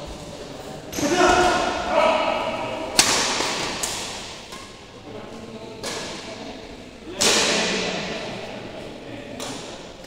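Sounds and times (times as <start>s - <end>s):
racket striking shuttlecock: 2.9s - 4.8s, 9.4s - 9.8s.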